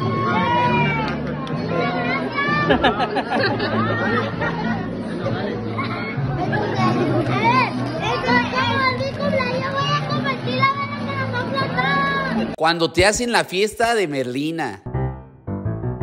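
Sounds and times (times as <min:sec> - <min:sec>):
background music with bass: 0:14.8 - 0:16.0.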